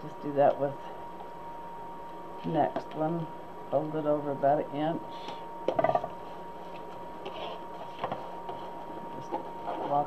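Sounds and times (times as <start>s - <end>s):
faint high-pitched hum: 0.0s - 7.6s.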